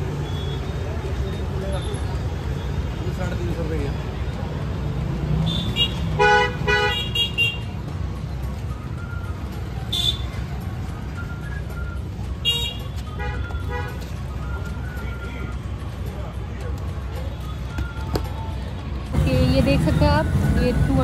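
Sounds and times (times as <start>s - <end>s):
traffic: 0.0s - 21.0s
vehicle horn toots: 5.4s - 7.6s, 12.4s - 14.0s.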